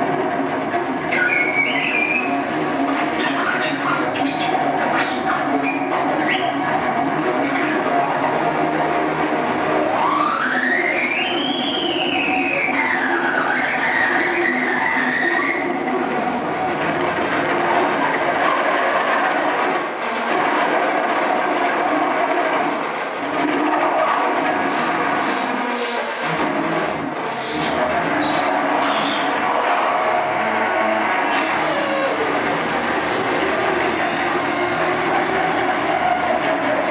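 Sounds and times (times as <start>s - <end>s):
harsh distorted noise music: 0.0s - 36.9s.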